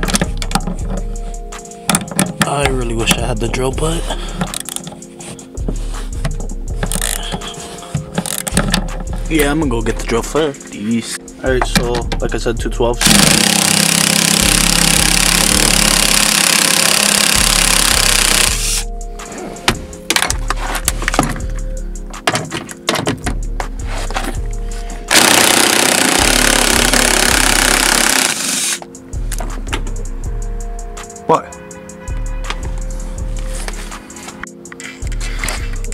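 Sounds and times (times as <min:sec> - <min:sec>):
clanks and rattles: 0:06.2 - 0:09.3, 0:22.2 - 0:24.4
impact driver hammering: 0:13.0 - 0:18.8, 0:25.1 - 0:28.9.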